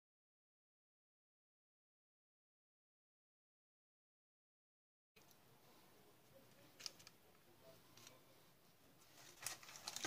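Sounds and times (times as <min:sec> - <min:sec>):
pastry brush clicks and rustles: 0:09.0 - 0:10.0.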